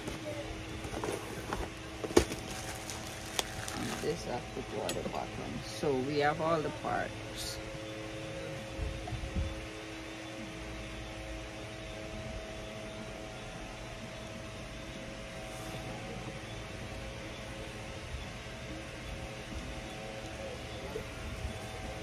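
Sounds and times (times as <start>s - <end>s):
faint mechanical hum: 0.0s - 22.0s.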